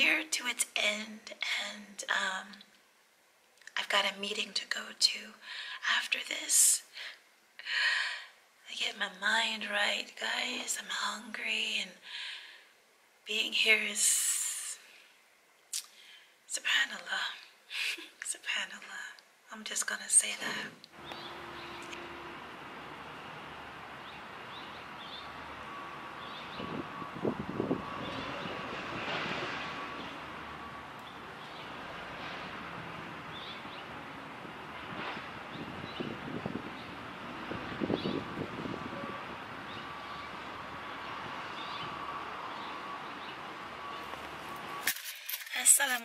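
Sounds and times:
distant traffic: 20.4 - 46.0
small birds chirping: 20.9 - 22.2, 23.9 - 26.8
wind hiss: 21.0 - 42.7.

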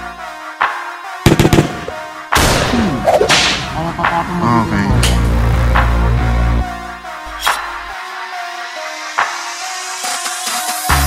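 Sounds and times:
sharp cracks: 1.3 - 3.8.

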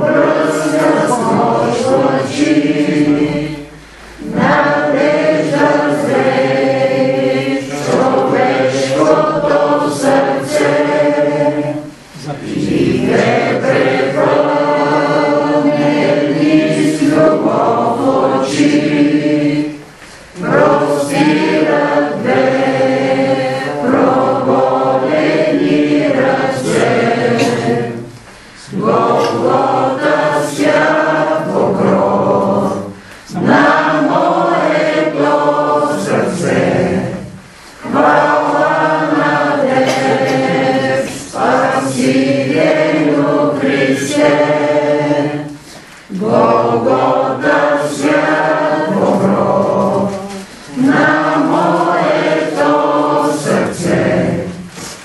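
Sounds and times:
group singing a hymn: 0.0 - 55.0.

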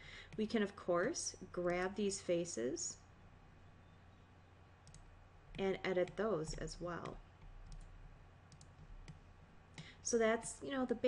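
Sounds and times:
faint low hum: 0.0 - 11.0
computer mouse clicks: 4.8 - 9.2.

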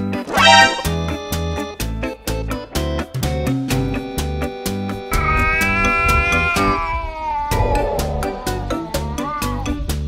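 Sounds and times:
cat yowling: 5.1 - 9.7.

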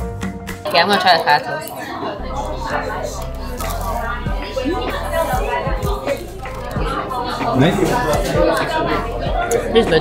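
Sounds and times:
music playing: 0.0 - 10.0
voices talking: 0.7 - 10.0.

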